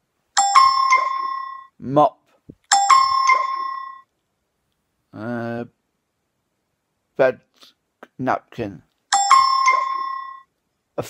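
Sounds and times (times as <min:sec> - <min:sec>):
bright ding chime: 0:00.4 - 0:01.7, 0:02.7 - 0:04.0, 0:09.1 - 0:10.4.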